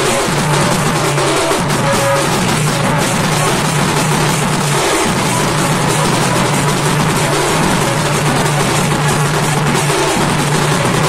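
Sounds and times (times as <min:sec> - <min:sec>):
folk band drums playing: 0:00.0 - 0:11.0.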